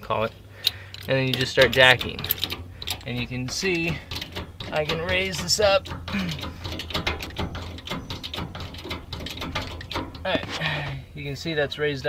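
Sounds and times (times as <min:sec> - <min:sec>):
bottle jack metallic clicks: 0:00.6 - 0:10.3.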